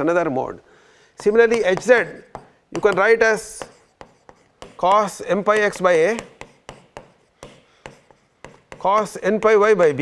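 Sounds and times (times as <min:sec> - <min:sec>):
man speaking: 0:01.2 - 0:03.9, 0:04.7 - 0:06.4, 0:08.8 - 0:10.0
stylus tapping on tablet screen: 0:01.2 - 0:09.8.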